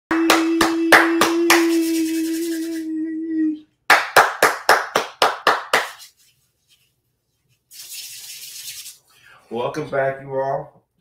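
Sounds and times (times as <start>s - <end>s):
person clapping hands: 0.1s - 2.7s, 3.9s - 6.1s.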